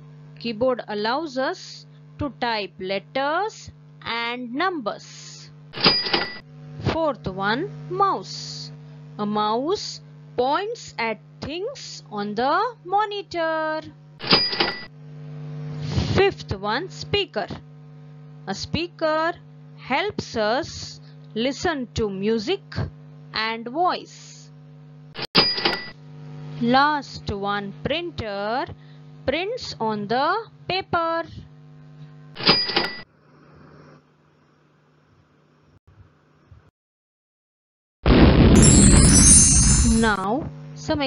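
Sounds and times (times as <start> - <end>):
faint steady hum: 0.0 - 14.9, 15.5 - 25.1, 25.7 - 32.3
noise burst with high ringing tone: 5.0 - 6.4, 14.2 - 15.0, 25.4 - 26.0, 38.1 - 40.4
bright bell-like ring: 38.6 - 40.2.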